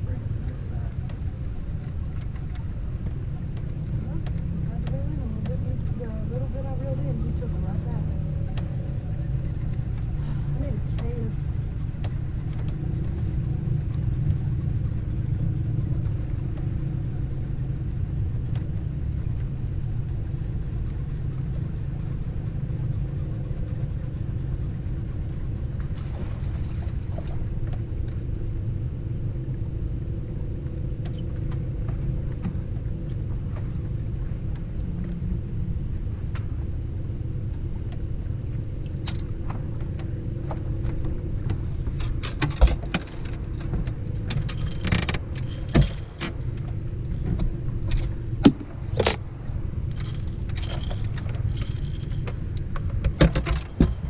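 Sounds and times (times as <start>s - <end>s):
low motor drone: 0.0s - 54.0s
fishing gear clicks and clanks: 0.4s - 28.5s, 36.2s - 54.0s.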